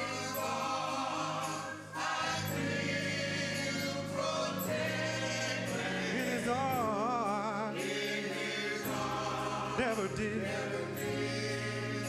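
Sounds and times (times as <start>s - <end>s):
electric keyboard: 0.0s - 12.0s
gospel choir singing in harmony: 0.0s - 12.0s.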